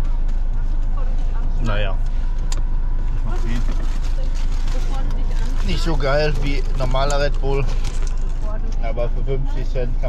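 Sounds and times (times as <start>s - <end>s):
low rumble inside a car: 0.0s - 10.0s.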